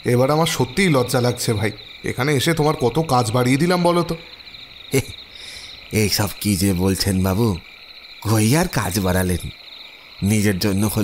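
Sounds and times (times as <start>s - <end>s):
crickets chirring: 0.0s - 11.0s.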